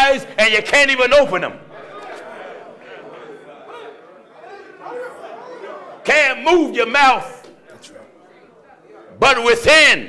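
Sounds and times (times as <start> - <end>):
faint voices murmuring: 1.6 - 6.2, 7.4 - 9.2.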